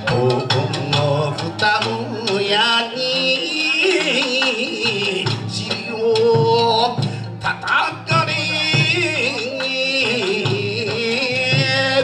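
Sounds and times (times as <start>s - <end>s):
band accompaniment: 0.0s - 12.0s
drum beats: 0.0s - 12.0s
man singing into a microphone: 0.0s - 12.0s.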